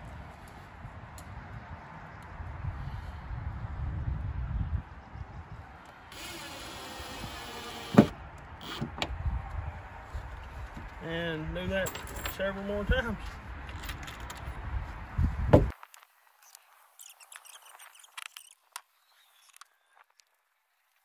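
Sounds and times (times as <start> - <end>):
cordless drill driving screw: 6.1 - 8.9.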